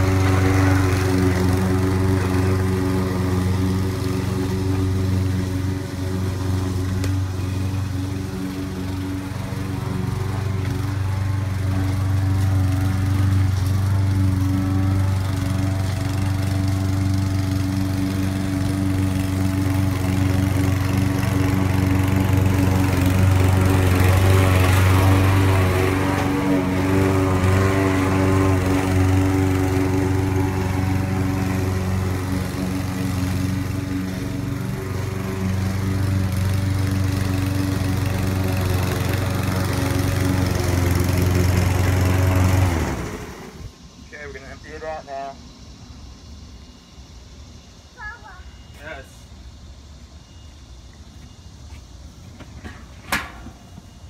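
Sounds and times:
push mower engine cutting grass: 0.0 - 45.3.

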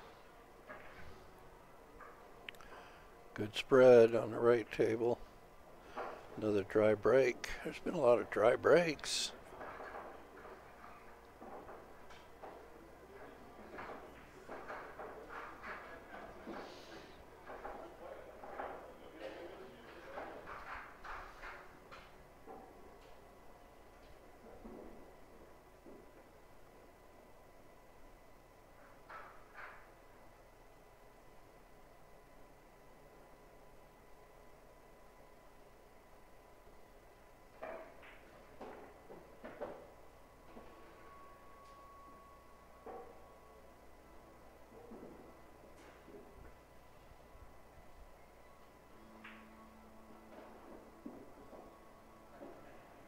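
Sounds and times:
faint high electrical tone: 0.0 - 9.5, 39.7 - 53.0
pool balls clicking: 37.5 - 40.8, 48.9 - 49.6.

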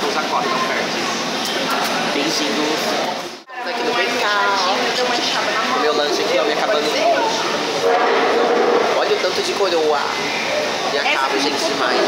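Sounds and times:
man talking: 9.0 - 10.2.

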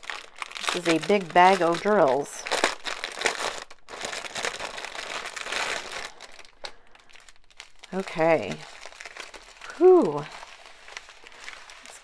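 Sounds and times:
plastic bag crinkling: 0.0 - 12.0.

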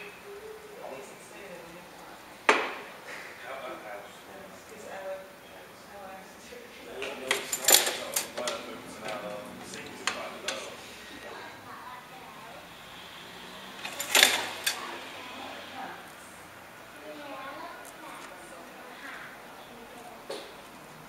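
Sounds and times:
quiet loom handling: 7.0 - 11.2, 13.6 - 15.2.

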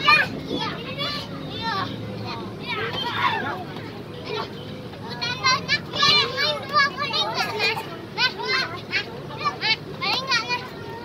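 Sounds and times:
children shouting while playing: 0.0 - 11.0.

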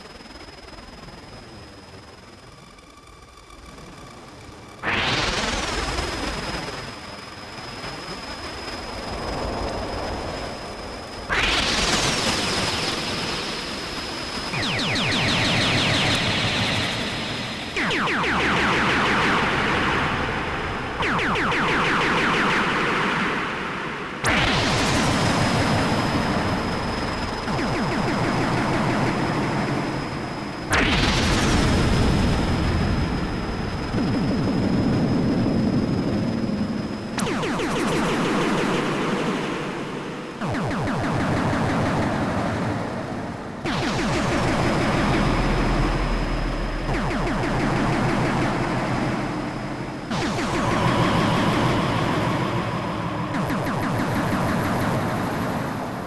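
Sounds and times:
noisy pulsing synthesizer drone: 2.1 - 56.0
falling synth pitch sweep: 14.6 - 32.4, 43.6 - 56.0.

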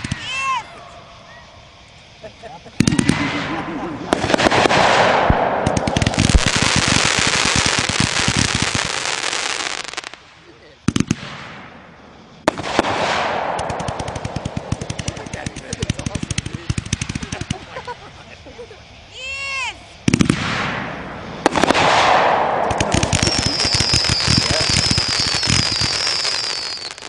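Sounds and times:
firework bangs: 0.0 - 18.2, 19.4 - 27.0
firework crackling: 0.0 - 27.0.

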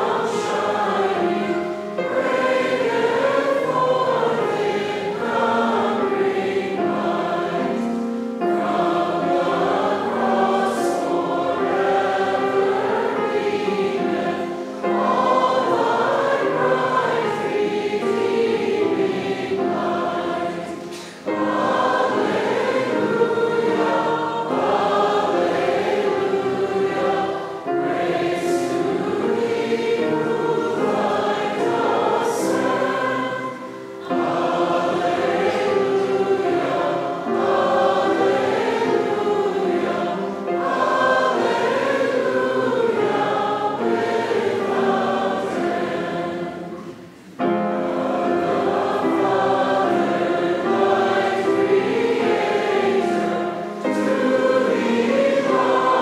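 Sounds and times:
congregation singing a hymn: 0.0 - 56.0.

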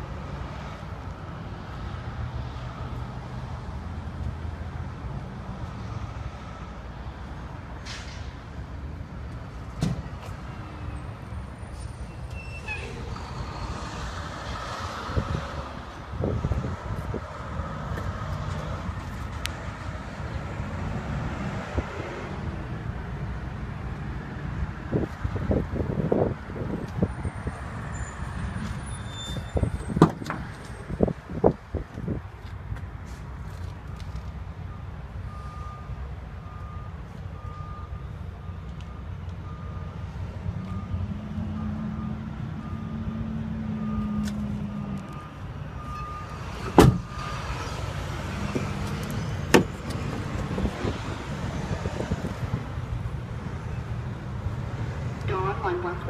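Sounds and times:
door slamming shut: 46.7 - 47.1.

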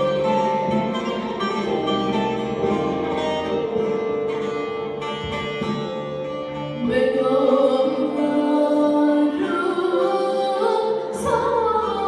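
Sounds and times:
plucked lute folk music: 0.0 - 12.0.

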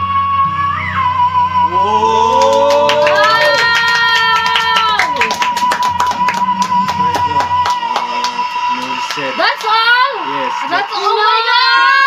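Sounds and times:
pop ballad backing music: 0.0 - 2.7
hands clapping: 2.2 - 11.2.

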